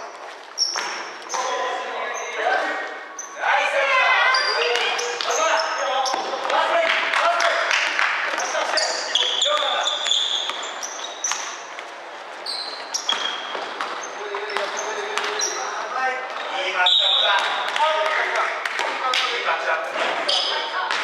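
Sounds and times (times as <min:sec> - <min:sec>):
sneakers squeaking: 0:00.0 - 0:06.6, 0:08.3 - 0:18.2, 0:20.0 - 0:21.0
players shouting: 0:01.3 - 0:07.6
ball bouncing on wooden floor: 0:13.0 - 0:15.6.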